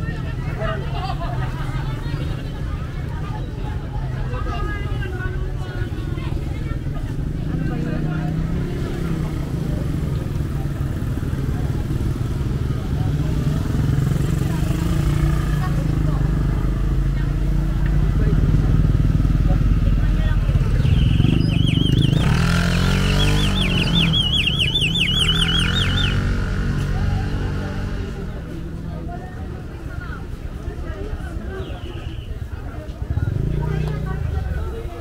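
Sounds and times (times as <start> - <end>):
motorcycle engines running: 0.0 - 35.0
people's voices: 0.0 - 35.0.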